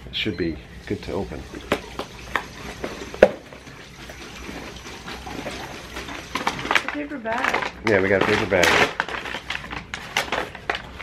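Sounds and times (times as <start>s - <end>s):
paper bag crinkling: 2.6s - 11.0s.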